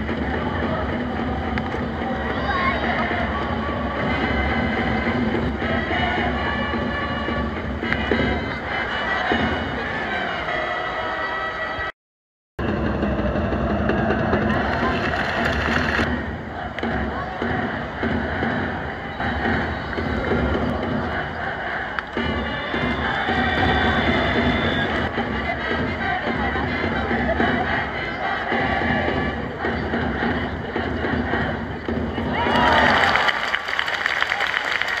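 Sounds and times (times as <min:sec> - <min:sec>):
crowd noise: 0:00.0 - 0:11.9, 0:12.6 - 0:35.0
music over stadium loudspeakers: 0:00.0 - 0:11.9, 0:12.6 - 0:35.0.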